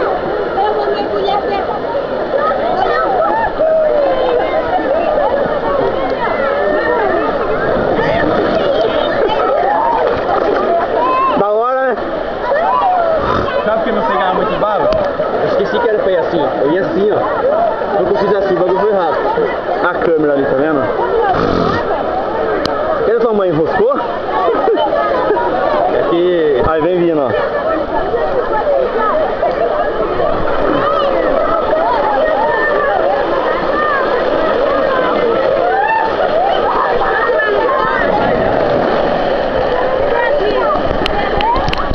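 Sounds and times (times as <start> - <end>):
people talking and calling out: 0.0 - 41.9
steady rushing noise: 30.0 - 41.9.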